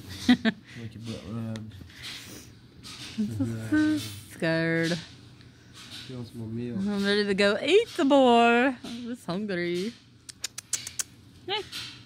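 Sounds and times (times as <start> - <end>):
person making sharp clicks: 10.2 - 11.2.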